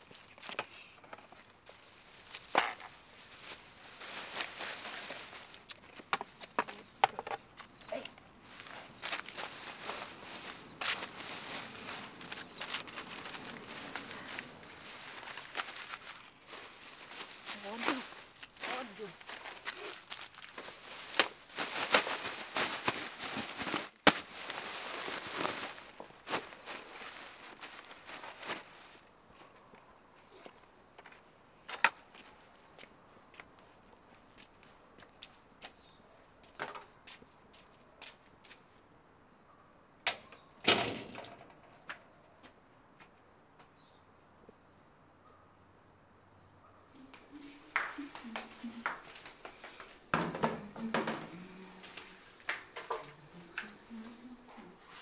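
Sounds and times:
plastic bag rustling and crackling: 0:01.6 - 0:06.1, 0:08.4 - 0:29.1
footsteps: 0:08.0 - 0:29.0, 0:47.0 - 0:55.0.

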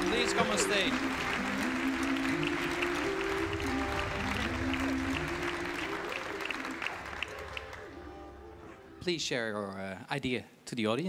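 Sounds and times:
audience applauding: 0:00.0 - 0:08.5
music with long held chords: 0:00.0 - 0:09.2.

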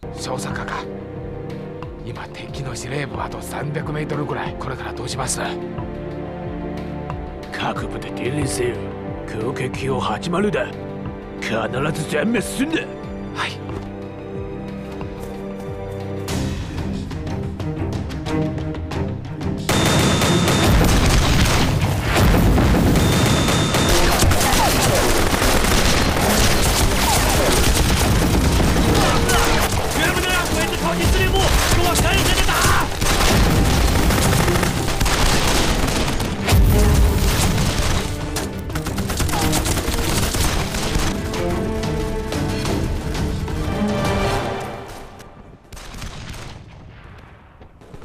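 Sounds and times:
dramatic score music: 0:00.0 - 0:47.2
mortar fire and explosions: 0:19.6 - 0:48.0
dense gunfire: 0:19.7 - 0:41.2, 0:45.7 - 0:48.0.

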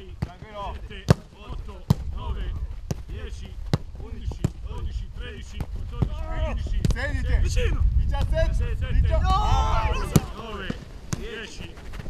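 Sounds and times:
players calling out: 0:00.0 - 0:07.6, 0:08.9 - 0:11.8
football kicks on grass: 0:02.8 - 0:04.9.

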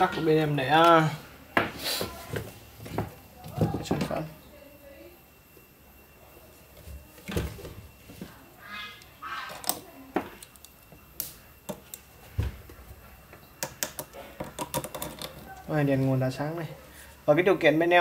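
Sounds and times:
handling clicks and knocks: 0:13.6 - 0:15.6.

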